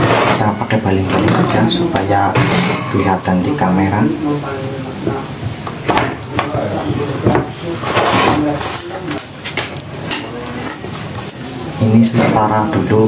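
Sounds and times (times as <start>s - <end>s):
scraping rub: 7.6s - 8.9s.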